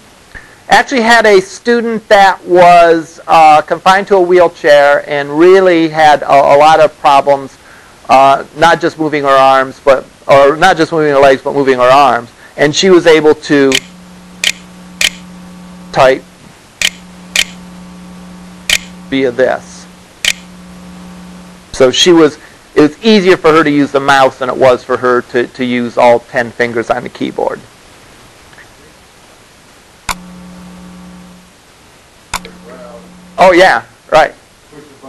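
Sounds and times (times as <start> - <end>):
low steady hum: 0.0 - 35.0
computer mouse clicks: 13.7 - 15.2, 16.8 - 17.6.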